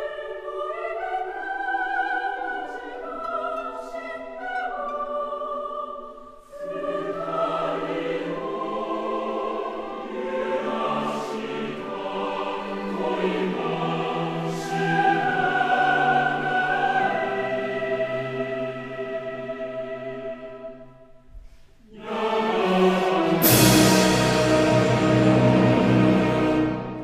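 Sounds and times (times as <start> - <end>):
boys' choir singing: 0.0 - 20.9, 21.9 - 27.0.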